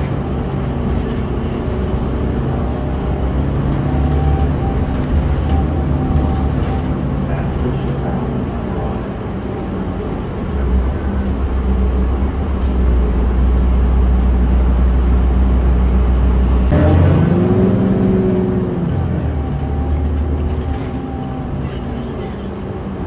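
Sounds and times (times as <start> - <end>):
bus engine droning: 0.0 - 23.0.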